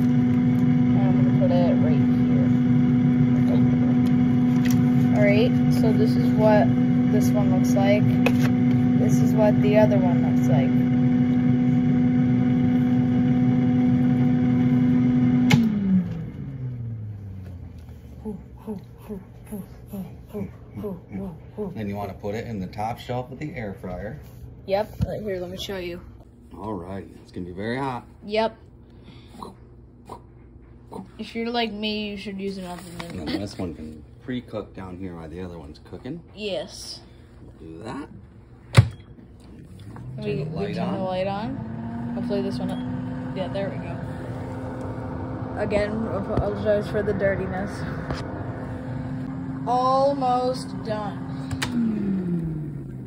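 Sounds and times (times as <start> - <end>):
air fryer fan humming: 0.0 - 30.1, 31.2 - 53.0.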